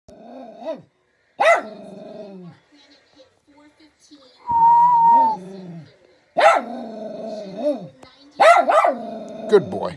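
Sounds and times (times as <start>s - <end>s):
small dog barking: 1.4s - 1.8s, 6.4s - 6.7s, 8.4s - 9.0s.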